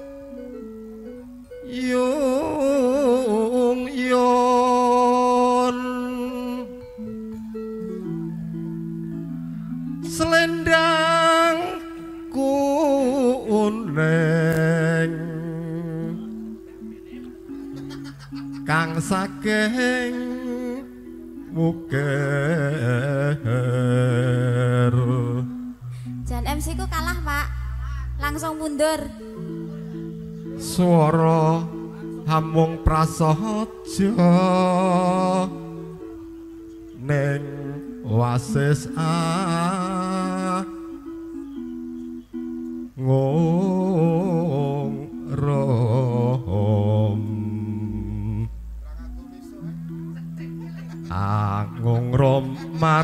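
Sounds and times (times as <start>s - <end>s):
sustained keyboard chords: 0.0s - 53.0s
person singing: 1.5s - 42.2s, 42.8s - 53.0s
deep held bass note: 26.2s - 28.5s, 47.6s - 50.1s.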